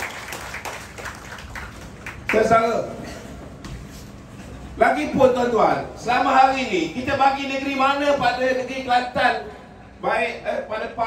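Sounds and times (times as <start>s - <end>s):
audience clapping: 0.0s - 2.5s.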